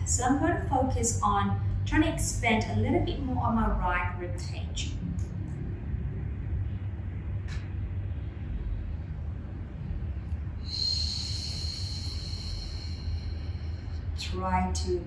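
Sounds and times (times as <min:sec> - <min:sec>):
steady low rumble: 0:00.0 - 0:15.0
slow exhale through the mouth: 0:10.6 - 0:14.2.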